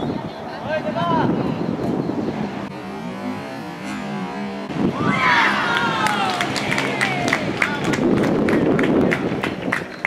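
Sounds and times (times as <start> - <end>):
high-pitched voices shouting: 5.0 - 7.6.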